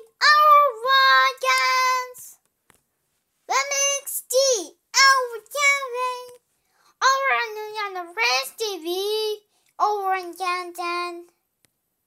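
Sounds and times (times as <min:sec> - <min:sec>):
child singing high notes: 0:00.0 - 0:02.4, 0:03.5 - 0:06.4, 0:07.0 - 0:11.3.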